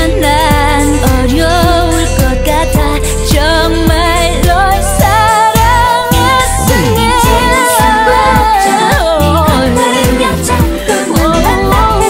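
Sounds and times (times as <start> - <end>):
pop band playing: 0.0 - 12.0.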